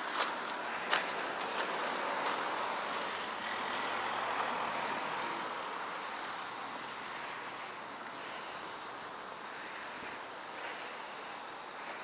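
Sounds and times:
vehicle passing by: 0:00.1 - 0:12.0.

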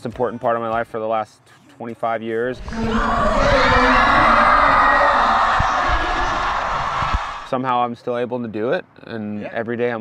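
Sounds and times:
crowd cheering loudly: 0:02.6 - 0:07.5
low thumps: 0:02.6 - 0:07.5.

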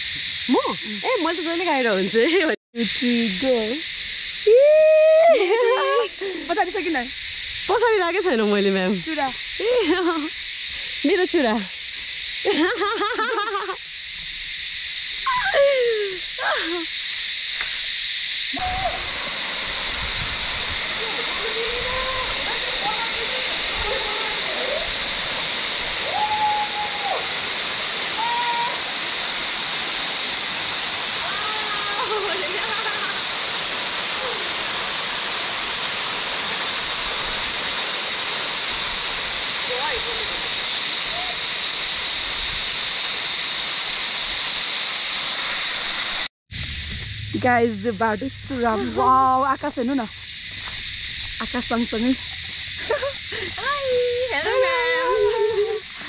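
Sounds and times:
waterfall rushing: 0:18.6 - 0:46.3.

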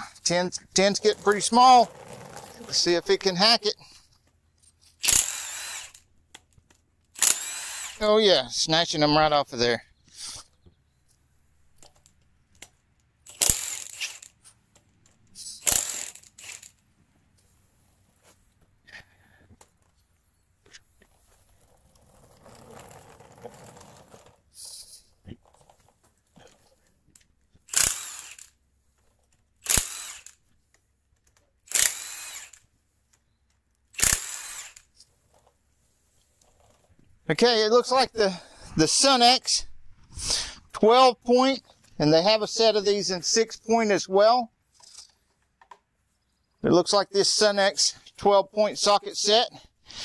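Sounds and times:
impact wrench hammering: 0:15.6 - 0:16.7.

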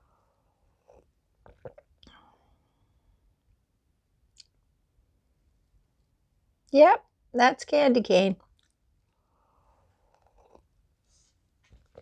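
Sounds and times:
sipping and slurping coffee: 0:00.8 - 0:02.0, 0:10.1 - 0:10.7.

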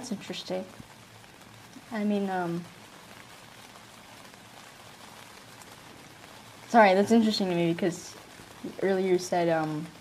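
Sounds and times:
rain on a tent: 0:00.0 - 0:10.0.

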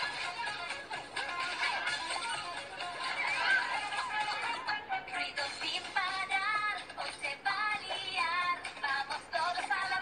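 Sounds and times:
backing music: 0:00.0 - 0:10.0
person singing with electronic effect: 0:00.0 - 0:10.0.

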